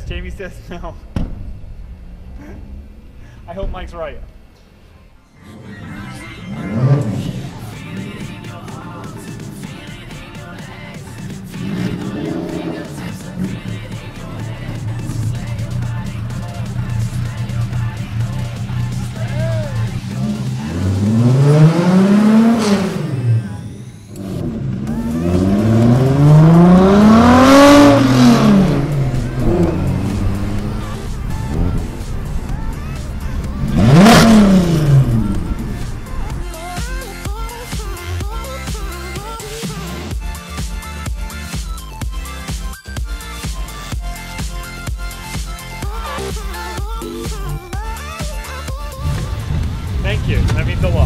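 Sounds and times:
car engine revving: 5.5 - 38.1, 49.0 - 51.0.

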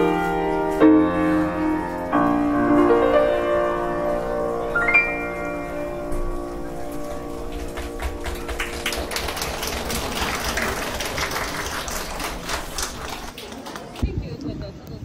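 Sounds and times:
piano chord ringing: 0.0 - 9.1
audience clapping: 6.8 - 14.0.

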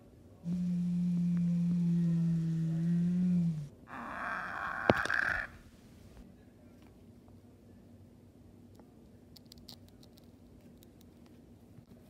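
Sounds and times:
person moaning low: 0.5 - 5.5.

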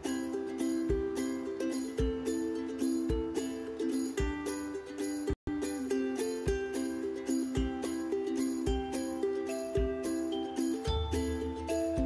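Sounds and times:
tinkly bell-like music with beat: 0.0 - 12.0.

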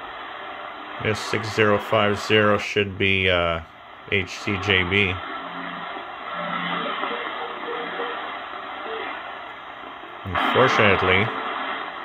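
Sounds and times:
radio hiss and static: 0.0 - 12.0
faint radio voice: 6.4 - 9.2, 10.3 - 11.5.

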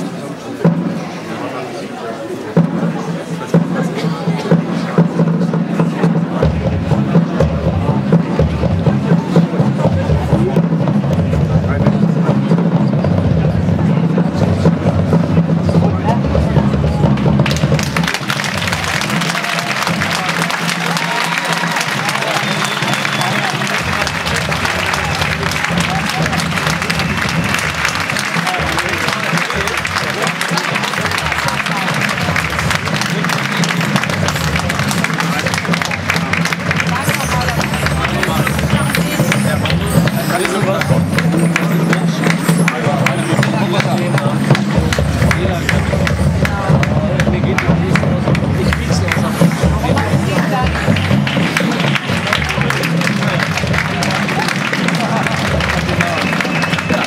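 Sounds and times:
audience applause: 17.4 - 57.0.

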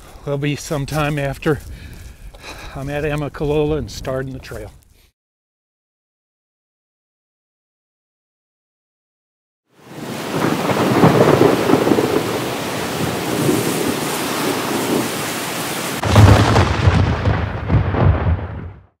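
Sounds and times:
rain falling: 9.8 - 18.4
thunder rumbling: 9.9 - 18.9.

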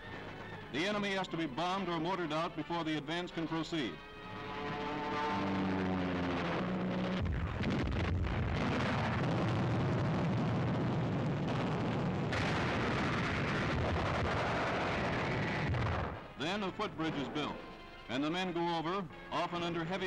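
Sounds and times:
propeller aircraft engine drone: 3.3 - 7.9
roar of explosions: 5.7 - 16.3.

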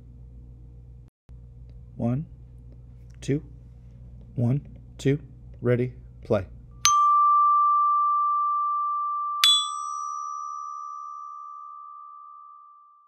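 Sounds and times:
glockenspiel bells ringing: 6.9 - 12.7.

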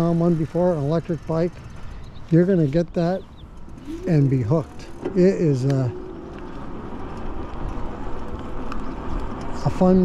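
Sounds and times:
low uneven rumble: 0.0 - 10.0
tyre noise on asphalt: 0.0 - 10.0.

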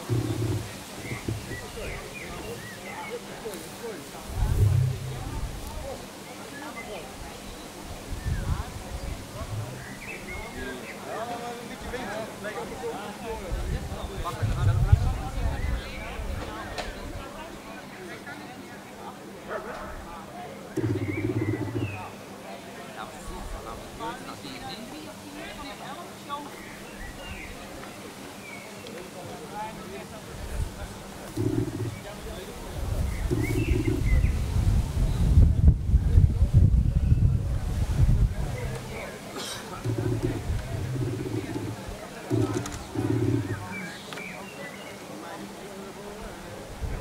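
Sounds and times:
faint voices: 0.0 - 47.0.

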